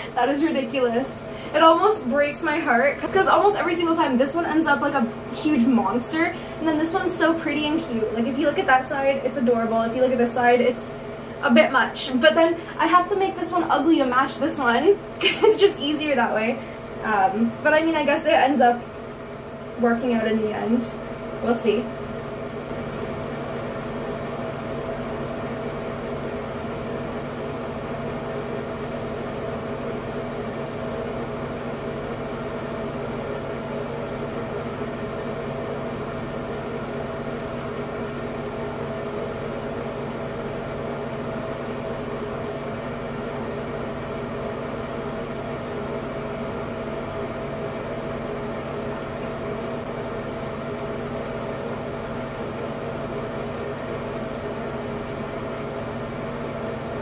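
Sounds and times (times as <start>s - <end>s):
exhaust fan humming: 0.0s - 57.0s.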